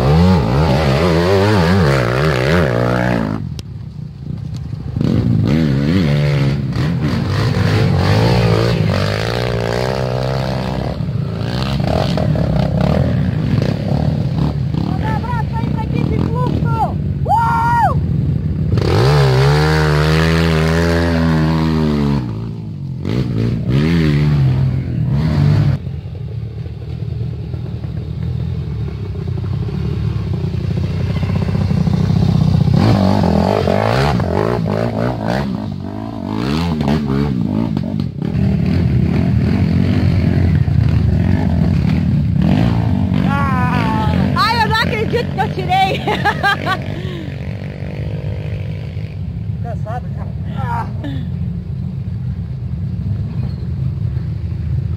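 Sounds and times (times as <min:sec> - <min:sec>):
dirt bike engines revving: 0:00.0 - 0:54.9.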